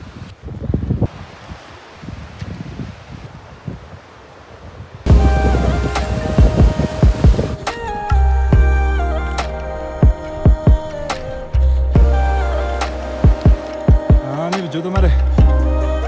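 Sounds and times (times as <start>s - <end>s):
wind rumbling on microphone: 0.0s - 14.3s
background music with deep bass: 5.1s - 16.0s.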